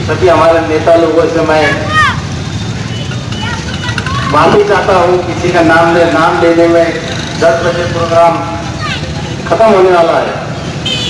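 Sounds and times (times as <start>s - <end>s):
faint voices: 1.5s - 10.6s.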